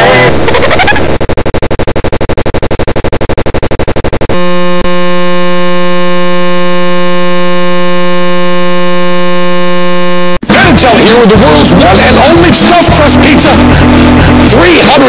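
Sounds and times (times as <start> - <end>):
steady buzzing tone: 0.0 - 14.8
distorted stuttering audio loop: 0.0 - 15.0.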